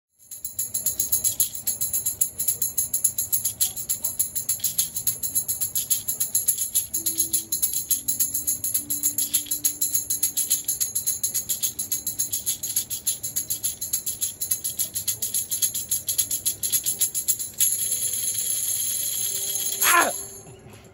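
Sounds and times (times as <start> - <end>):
tambourines jingling: 0.1 - 20.6
person shouting: 19.8 - 20.3.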